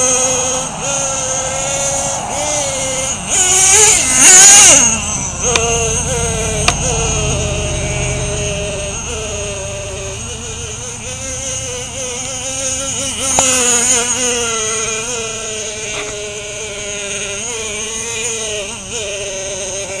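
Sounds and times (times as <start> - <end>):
model engine high-pitched whine: 0.0 - 20.0.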